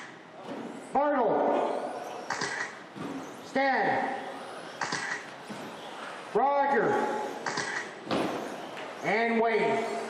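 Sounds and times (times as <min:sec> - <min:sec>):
rc car passing: 0:00.0 - 0:10.0.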